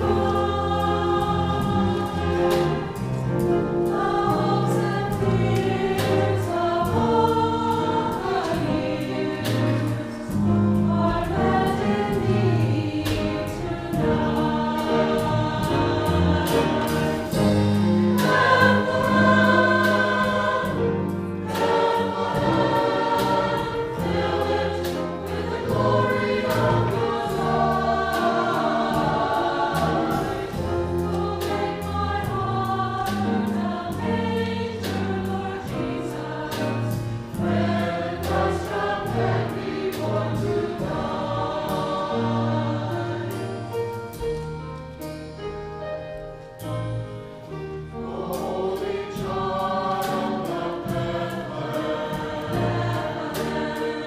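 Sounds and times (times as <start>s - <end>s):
mixed choir singing: 0.0s - 44.2s, 47.6s - 54.0s
instrumental accompaniment: 0.0s - 54.0s.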